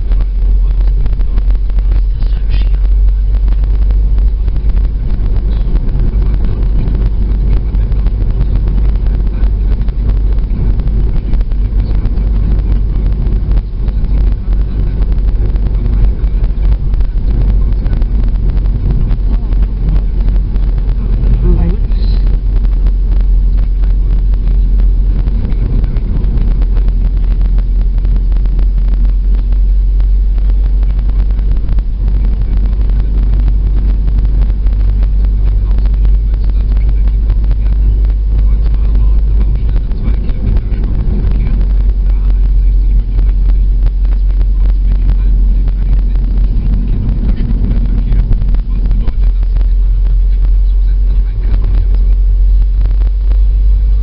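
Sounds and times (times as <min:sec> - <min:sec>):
car engine and tyre rumble: 0:00.0 - 0:54.0.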